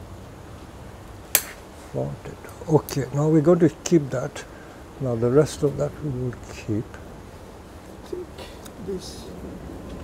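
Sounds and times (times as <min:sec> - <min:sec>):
low steady background: 0:00.0 - 0:10.0
scissors snipping a branch: 0:01.3 - 0:01.6.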